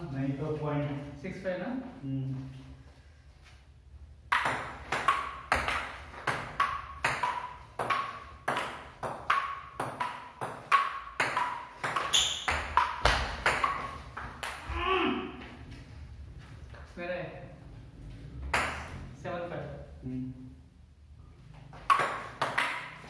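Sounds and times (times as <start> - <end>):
ball pinging on wooden table: 4.3 - 14.7, 21.8 - 23.0
table tennis ball hitting paddles: 4.3 - 14.8, 18.4 - 19.0, 21.5 - 23.0
person shouting: 14.7 - 15.4.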